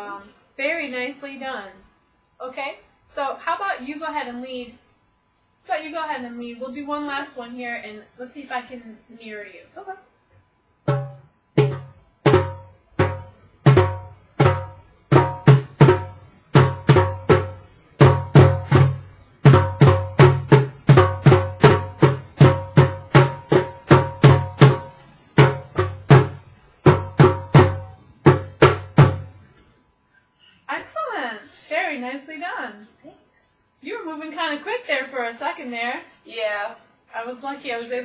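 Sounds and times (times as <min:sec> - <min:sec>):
djembes played with hands: 0:10.9 - 0:29.4.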